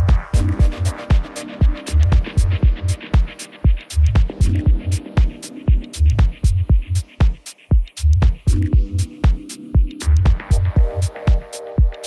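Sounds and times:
deep pulsing bass: 0:00.0 - 0:01.0, 0:01.7 - 0:03.1, 0:04.0 - 0:07.2, 0:08.0 - 0:09.2, 0:10.0 - 0:11.2
deep techno music: 0:00.0 - 0:12.0
hi-hat ticks: 0:00.0 - 0:12.0
steady kick drum: 0:00.0 - 0:12.0.

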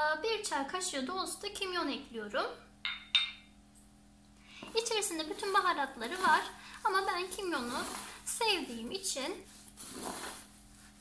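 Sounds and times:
glass clinking on hard surface: 0:02.8 - 0:03.5.

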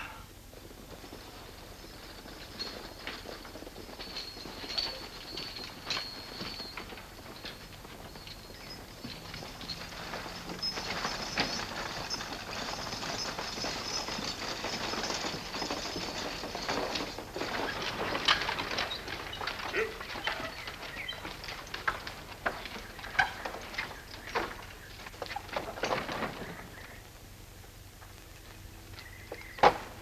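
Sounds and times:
horse hoofbeats: 0:00.0 - 0:30.0
wooden wagon wheels rattling: 0:00.4 - 0:30.0
sharp clatters: 0:00.9 - 0:27.1.

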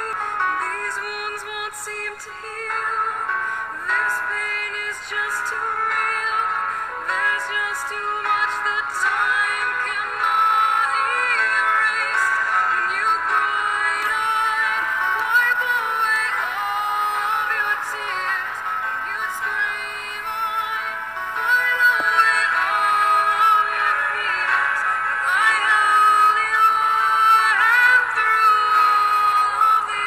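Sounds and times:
backing music: 0:00.0 - 0:30.0
person singing: 0:00.0 - 0:30.0.

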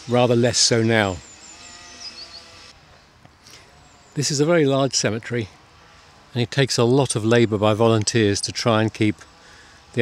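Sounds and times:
faint outdoor ambience: 0:00.0 - 0:10.0
bird chirping: 0:00.9 - 0:02.7.

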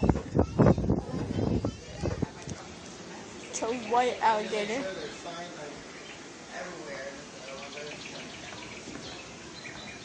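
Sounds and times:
steady background noise: 0:00.0 - 0:10.0
small bird chirping: 0:07.4 - 0:10.0.

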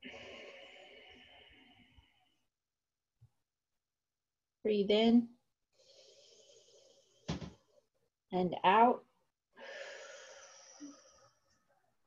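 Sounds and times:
person breathing out slowly: 0:00.0 - 0:02.3, 0:05.8 - 0:07.3, 0:09.6 - 0:11.5.

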